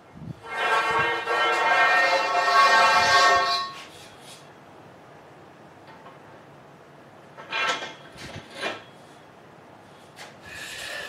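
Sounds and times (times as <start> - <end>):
steel pipe scraping on concrete: 0.3 - 4.5, 7.4 - 9.1, 10.0 - 11.0.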